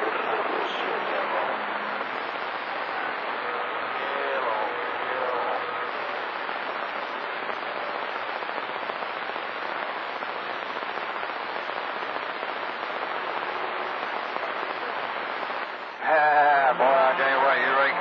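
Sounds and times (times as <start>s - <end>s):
faint voice: 0.0s - 8.1s, 13.5s - 18.0s
radio static hiss: 0.0s - 18.0s.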